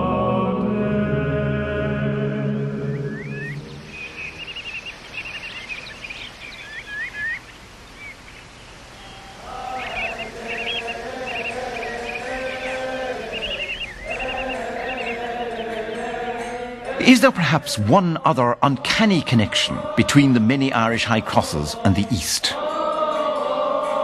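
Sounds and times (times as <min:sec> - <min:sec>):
held drone of notes: 0:00.0 - 0:05.8, 0:08.9 - 0:17.7
small birds chirping: 0:02.7 - 0:16.8.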